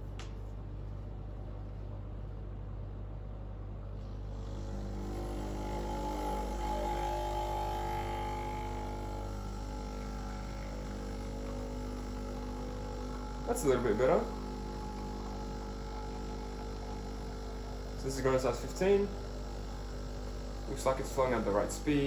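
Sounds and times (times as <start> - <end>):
espresso machine pump humming: 3.8 - 22.0.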